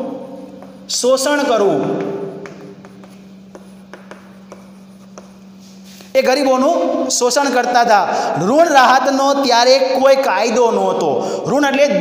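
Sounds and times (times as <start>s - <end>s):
steady low hum: 0.0s - 12.0s
chalk scratching and tapping: 0.4s - 6.2s.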